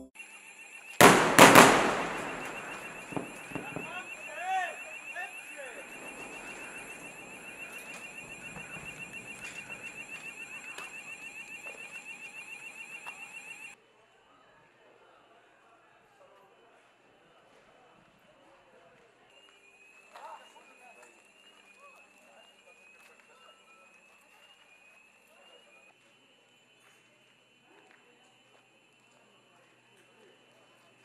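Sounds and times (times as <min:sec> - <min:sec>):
electronic alarm beeping: 0:00.0 - 0:13.8
loud bangs: 0:01.0 - 0:09.9.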